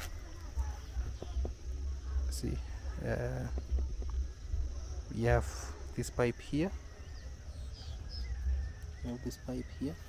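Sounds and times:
faint high bird chirps: 0:00.0 - 0:10.0
low uneven rumble: 0:00.0 - 0:10.0.

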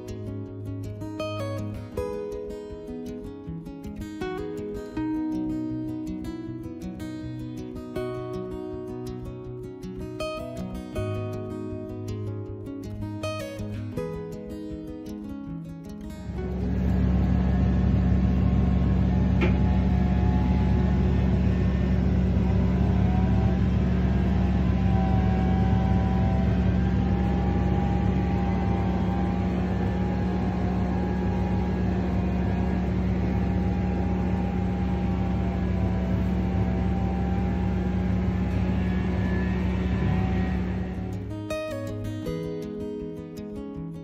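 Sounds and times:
combine harvester engine drone: 0:16.2 - 0:42.1.

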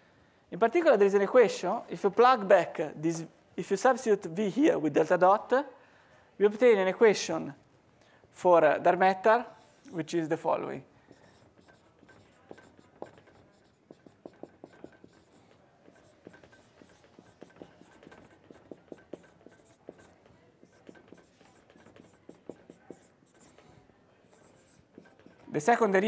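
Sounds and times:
marker writing on whiteboard: 0:11.0 - 0:26.0.

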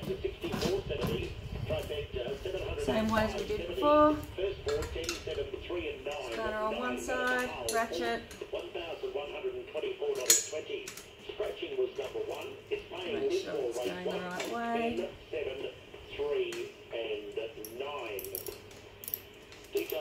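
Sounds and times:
talk from a radio: 0:00.5 - 0:09.9, 0:11.6 - 0:16.7
spanner and ratchet clinking: 0:17.6 - 0:20.0.

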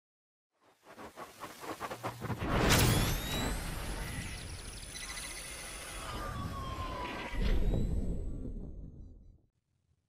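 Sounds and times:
falling electronic tone: 0:01.5 - 0:09.2
electronic tones gliding in pitch: 0:02.7 - 0:08.5.

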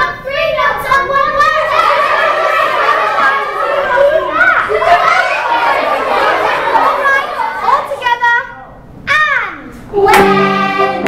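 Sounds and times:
children chattering and exclaiming: 0:00.0 - 0:09.8.

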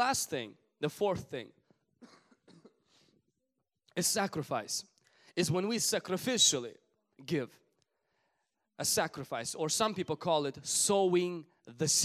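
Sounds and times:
faint short coughs: 0:02.0 - 0:03.0.

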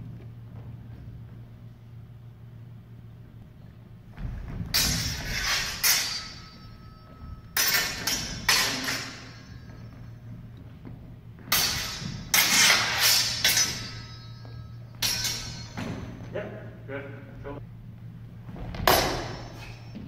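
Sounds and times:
sword blades clashing: 0:04.7 - 0:10.1, 0:11.4 - 0:16.6, 0:18.8 - 0:20.0.

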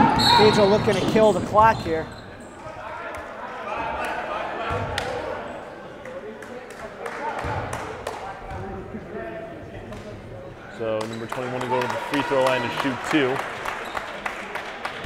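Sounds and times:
crowd chatter and shouts: 0:00.0 - 0:10.8.

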